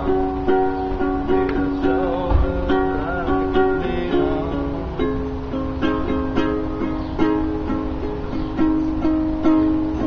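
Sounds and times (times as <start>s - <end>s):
acoustic string instrument strumming: 0.0s - 10.0s.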